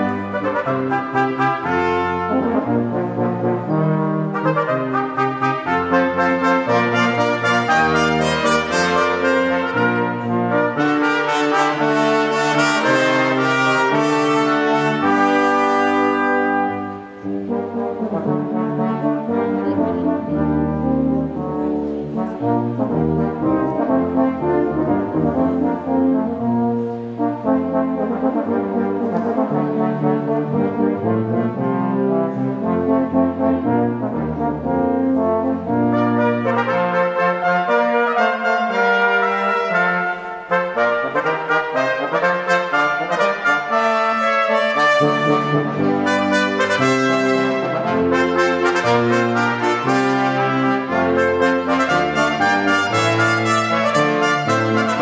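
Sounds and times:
brass ensemble playing chords: 0.0s - 55.0s.

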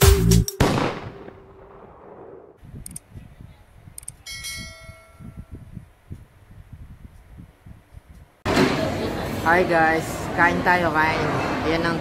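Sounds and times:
notification bell ding: 4.3s - 5.5s.

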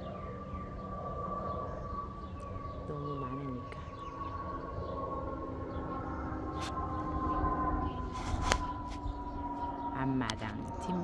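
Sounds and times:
distant siren-like whine: 0.0s - 11.0s.

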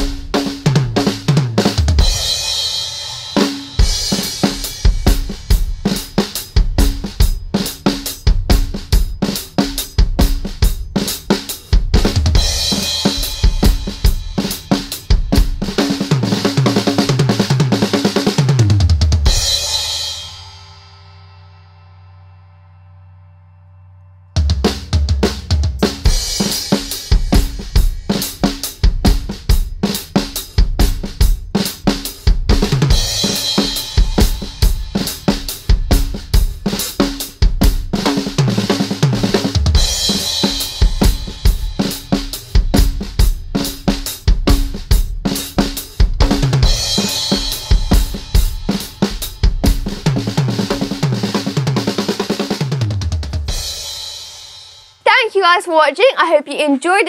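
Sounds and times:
drum kit beat: 0.0s - 20.8s, 24.4s - 56.1s.

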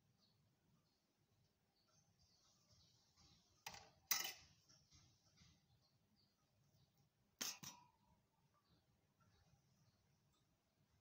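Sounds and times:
kitchenware clinking: 3.6s - 4.6s.

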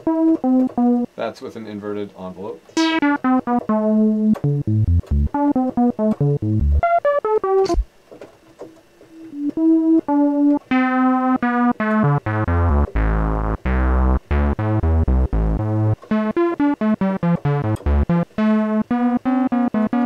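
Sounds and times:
synthesizer notes: 0.0s - 1.2s, 2.8s - 7.8s, 9.3s - 20.0s.

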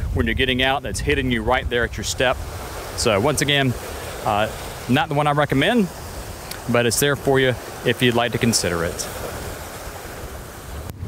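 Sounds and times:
surf breaking on rocks: 0.0s - 11.0s
wind rumbling on microphone: 0.0s - 11.0s.

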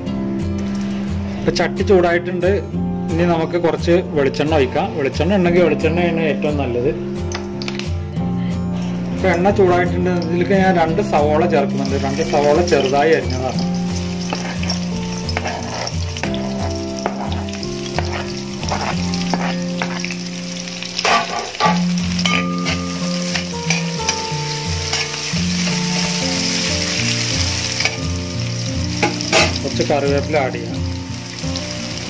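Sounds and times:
onions sizzling in oil: 10.2s - 32.0s
clicks and scrapes in pan: 14.3s - 20.1s.

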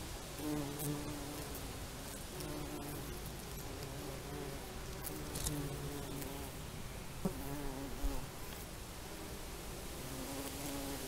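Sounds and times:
flying insects buzzing: 0.0s - 11.0s.

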